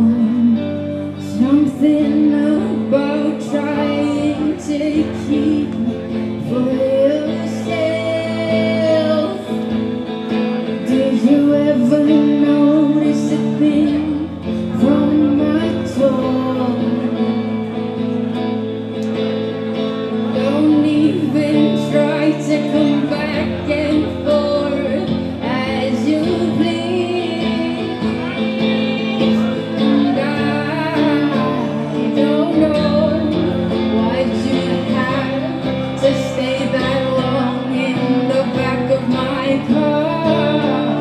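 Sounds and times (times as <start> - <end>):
electric guitar: 0.0 - 41.0
woman singing into a microphone: 0.0 - 41.0.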